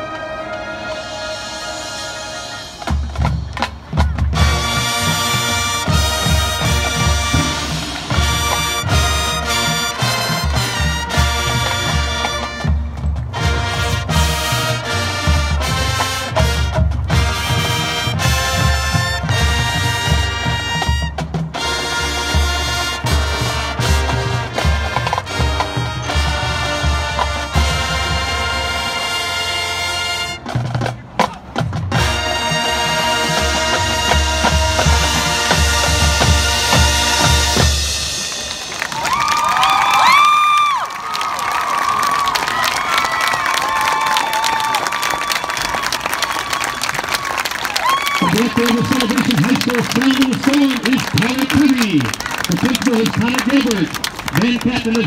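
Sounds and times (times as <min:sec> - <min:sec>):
marching band playing: 0:00.0 - 0:55.0.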